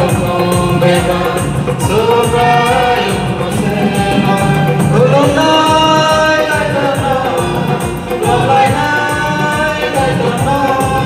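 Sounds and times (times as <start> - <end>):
choir singing a gospel hymn: 0.0 - 11.0.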